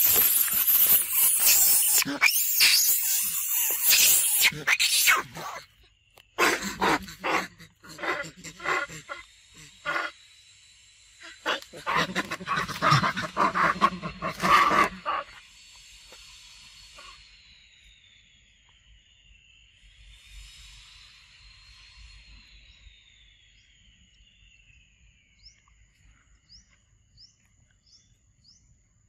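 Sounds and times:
macaques giving harsh cries: 0.0 - 5.7, 6.4 - 10.1, 11.2 - 15.4.

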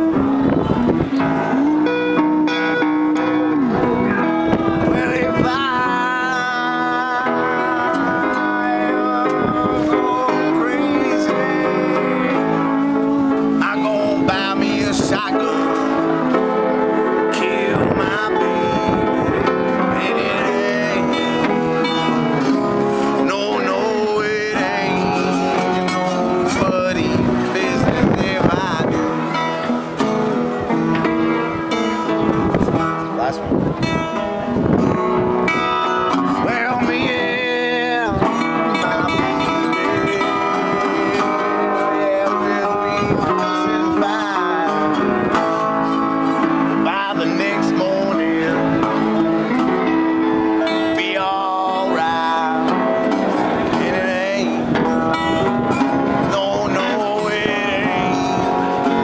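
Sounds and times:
acoustic guitars playing: 0.0 - 59.0
resonator guitar playing: 0.0 - 59.0.

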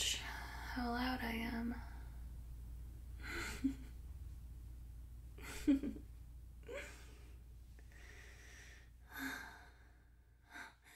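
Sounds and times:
faint breath: 6.7 - 10.9.

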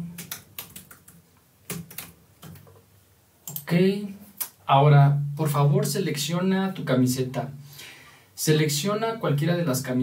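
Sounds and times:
typing on computer keyboard: 0.1 - 2.7, 3.4 - 3.7.

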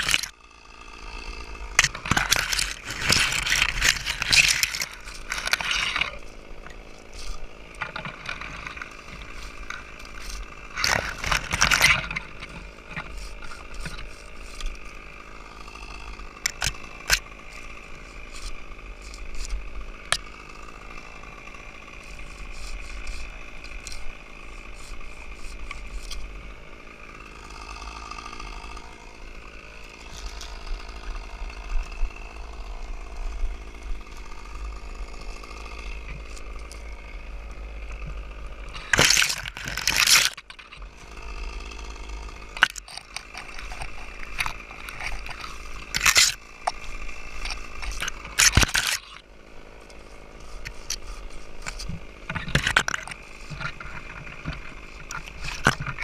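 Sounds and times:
branches rustling and scraping on gear: 0.0 - 56.0
twigs clicking and cracking: 0.0 - 56.0.

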